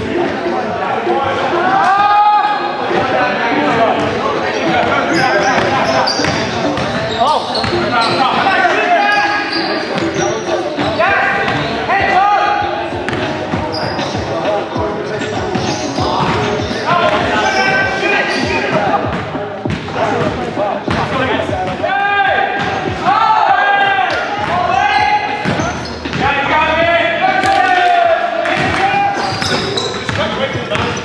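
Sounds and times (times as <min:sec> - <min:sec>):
players calling out: 0:00.0 - 0:31.0.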